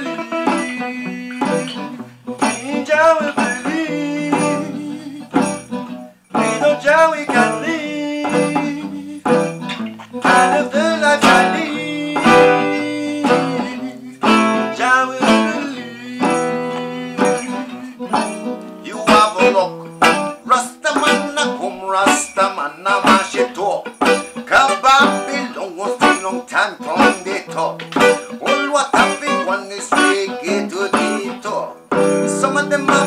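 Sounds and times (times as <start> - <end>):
acoustic guitar reggae chords: 0.0 - 33.0.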